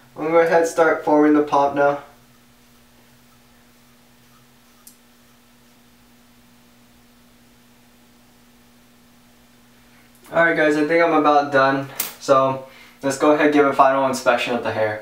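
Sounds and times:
faint low hum: 0:00.0 - 0:15.0
small click: 0:04.8 - 0:05.0.

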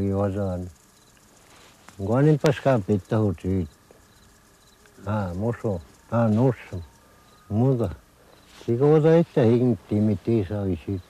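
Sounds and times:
elderly man speaking: 0:00.0 - 0:00.7, 0:02.0 - 0:03.8, 0:05.0 - 0:11.0
faint insect chirps: 0:00.0 - 0:11.0.

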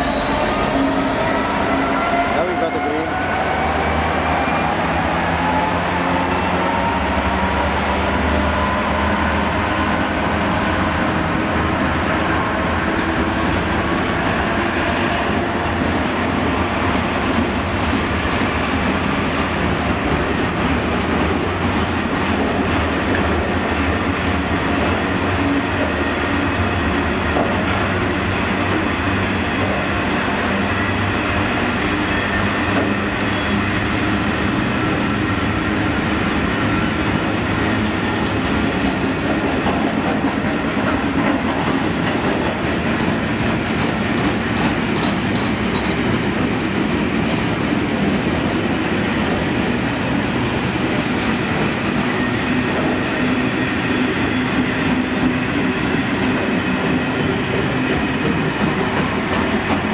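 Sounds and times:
freight train wheels on rails: 0:00.0 - 0:59.9.

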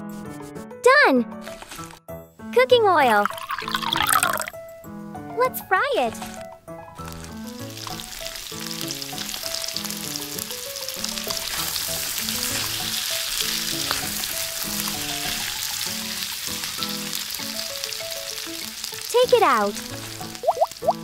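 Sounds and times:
light background melody: 0:00.0 - 0:21.0
oil sizzling and crackling: 0:03.1 - 0:04.6, 0:06.1 - 0:21.0.

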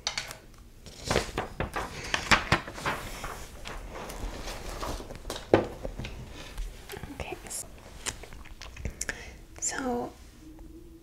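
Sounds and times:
paper rustling: 0:00.8 - 0:08.5
person whispering: 0:06.9 - 0:07.7, 0:08.8 - 0:10.2.

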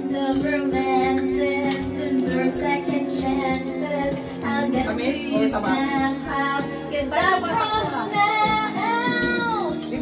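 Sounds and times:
girl singing: 0:00.0 - 0:10.0
instrumental backing music: 0:00.0 - 0:10.0.

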